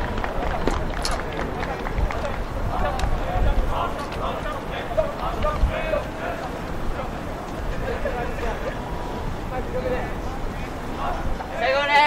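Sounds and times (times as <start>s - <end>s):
players talking and calling: 0.0s - 12.0s.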